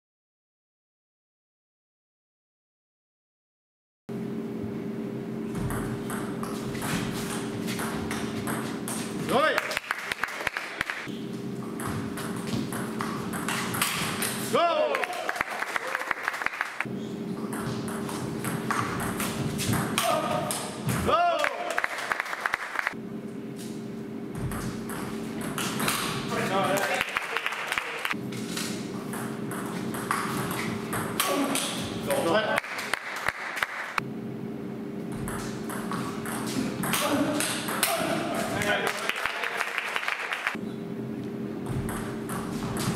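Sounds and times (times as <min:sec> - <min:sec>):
steady hum: 0:04.1 - 0:15.6, 0:16.8 - 0:22.1, 0:22.9 - 0:39.0, 0:40.5 - 0:42.9
person shouting: 0:14.5 - 0:15.4, 0:20.0 - 0:21.8.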